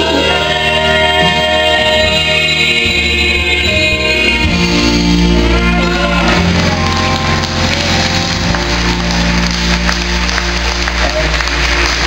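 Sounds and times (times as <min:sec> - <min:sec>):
held chords of accompaniment: 0:00.0 - 0:12.0
audience applauding: 0:05.5 - 0:12.0.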